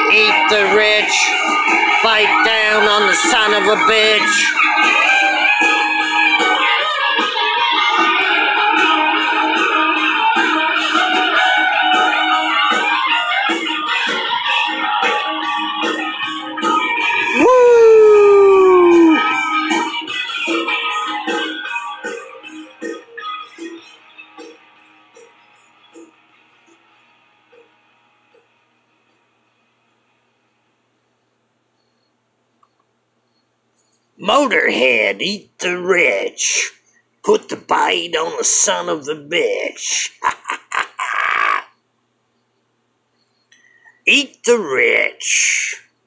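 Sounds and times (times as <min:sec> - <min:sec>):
rock backing track: 0:00.0 - 0:23.8
man howling: 0:17.2 - 0:19.4, 0:40.6 - 0:41.8
man's hoarse laugh: 0:40.0 - 0:41.7.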